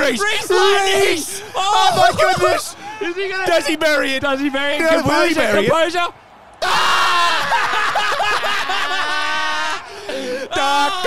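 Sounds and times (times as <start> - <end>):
men crying out in dismay: 0.5 - 3.4, 6.6 - 11.0.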